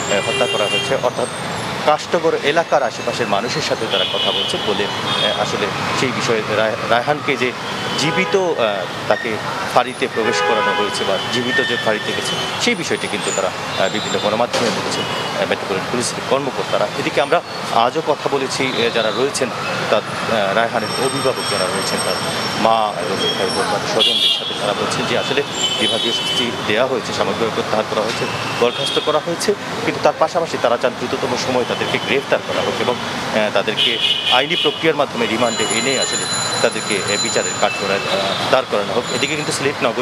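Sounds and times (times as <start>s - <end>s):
man speaking: 0.0s - 1.3s, 1.9s - 40.0s
man talking: 0.0s - 40.0s
street traffic noise: 0.0s - 40.0s
vehicle horn toot: 0.1s - 1.1s, 7.8s - 8.6s, 10.2s - 11.6s, 24.0s - 24.6s.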